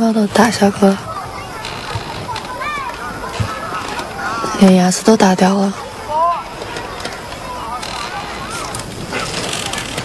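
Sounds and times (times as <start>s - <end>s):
woman speaking: 0.0s - 1.1s, 4.5s - 5.8s
faint distant voices: 0.0s - 10.0s
outdoor background hiss: 0.0s - 10.0s.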